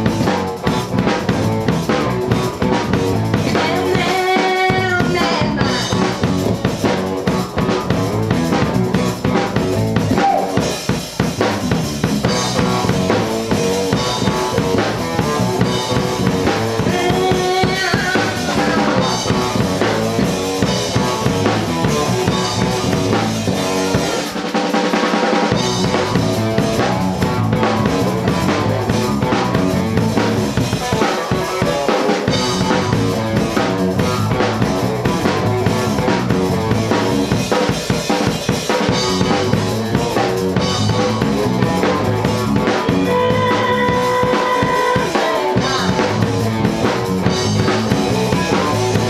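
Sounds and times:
electric bass: 0:00.0 - 0:24.4, 0:25.0 - 0:49.0
drum kit: 0:00.0 - 0:49.0
live pop-rock band: 0:00.0 - 0:49.0
woman singing: 0:03.4 - 0:05.9, 0:16.8 - 0:19.2, 0:43.0 - 0:46.3.

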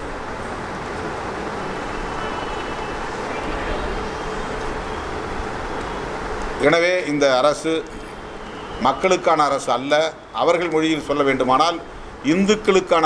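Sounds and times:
steady background rush: 0:00.0 - 0:13.0.

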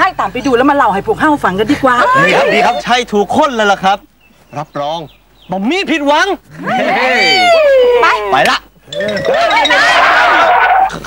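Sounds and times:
several voices talking: 0:00.0 - 0:10.6
man exclaiming excitedly: 0:02.0 - 0:03.0.

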